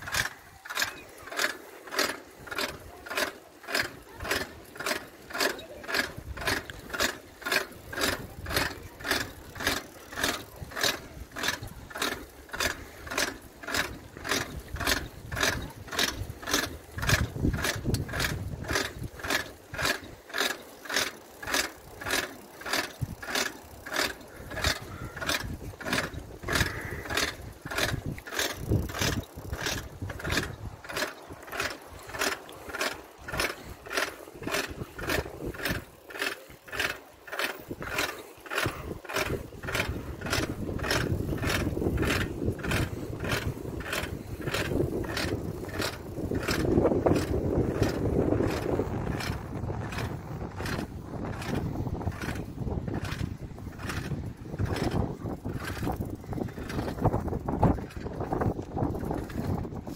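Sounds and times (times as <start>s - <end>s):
wind rumbling on microphone: 2.1s - 20.4s, 21.0s - 59.9s.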